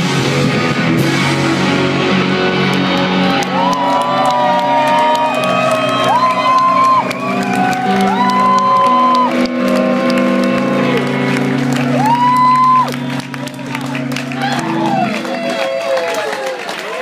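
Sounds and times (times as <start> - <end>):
electric guitar sustained lead notes: 0.0 - 16.0
rock band playing: 0.0 - 16.5.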